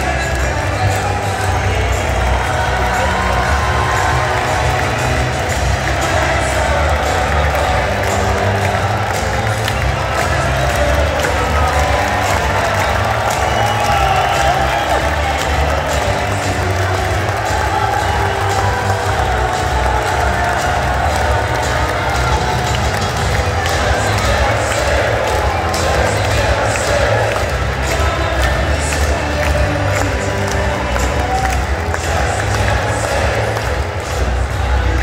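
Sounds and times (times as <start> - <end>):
crowd cheering and applauding: 0.0 - 35.0
music with heavy bass: 0.0 - 35.0.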